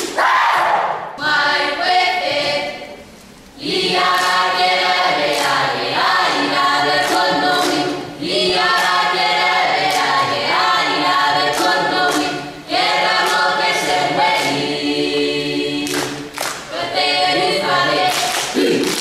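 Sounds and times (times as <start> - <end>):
choir singing without instruments: 0.0 - 19.0.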